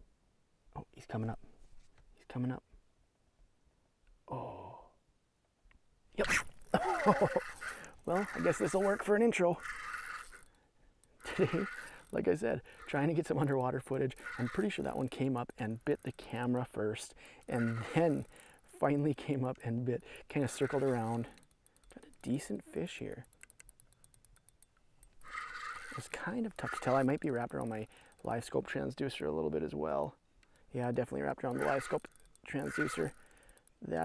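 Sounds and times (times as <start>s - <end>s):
person grunting: 4.3s - 4.9s
fishing reel metallic clinks: 6.3s - 29.3s, 30.4s - 34.0s.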